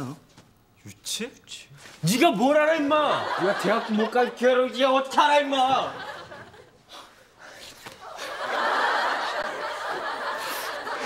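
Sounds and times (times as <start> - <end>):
audience laughing: 2.8 - 4.8, 5.6 - 7.1, 8.0 - 11.0.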